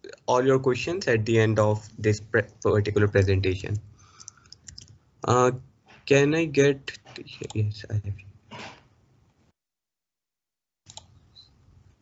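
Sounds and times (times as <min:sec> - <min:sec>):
faint room noise: 0:00.0 - 0:09.6
computer mouse clicks: 0:04.2 - 0:05.0, 0:10.9 - 0:11.5.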